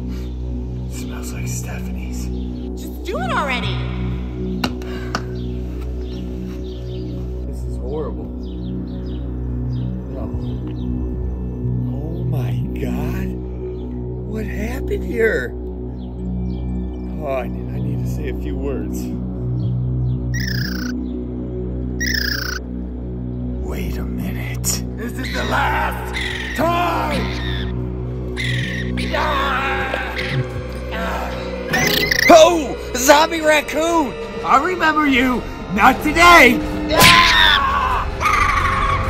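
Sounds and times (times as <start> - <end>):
background music low sustained tones: 0.0 - 39.0
short high falling calls: 20.4 - 21.0, 22.0 - 22.6.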